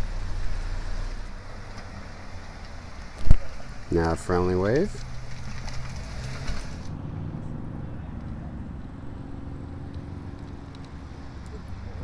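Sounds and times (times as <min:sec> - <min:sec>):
tyre road noise hiss: 0:00.0 - 0:07.0
vehicle engine humming: 0:00.0 - 0:12.0.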